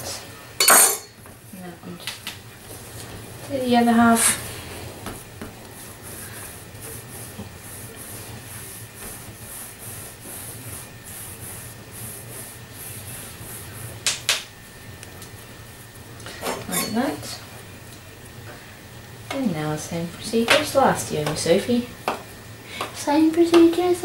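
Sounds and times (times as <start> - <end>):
hands rubbing dough on wood: 2.6 - 14.2.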